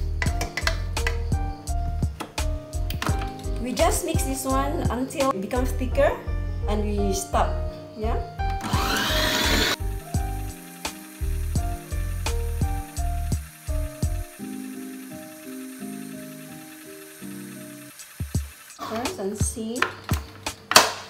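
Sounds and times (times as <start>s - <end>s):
background music with beat: 0.0s - 5.3s, 9.6s - 16.8s, 17.4s - 21.0s
stand mixer whirring: 8.7s - 9.8s.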